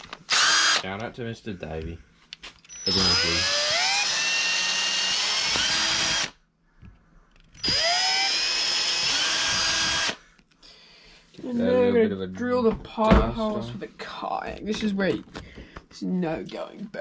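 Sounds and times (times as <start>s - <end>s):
cordless drill whining: 0.0s - 0.8s, 2.6s - 6.4s, 7.5s - 10.2s.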